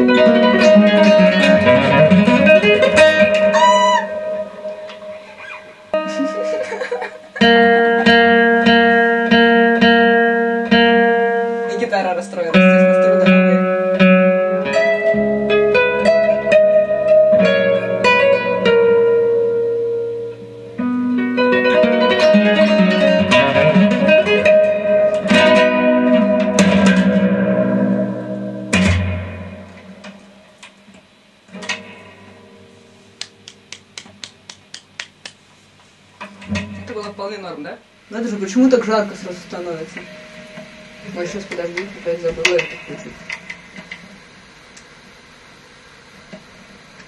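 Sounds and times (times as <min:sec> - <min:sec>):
classical guitar plucked notes and chords: 0:00.0 - 0:34.0, 0:36.2 - 0:37.6, 0:38.4 - 0:44.0.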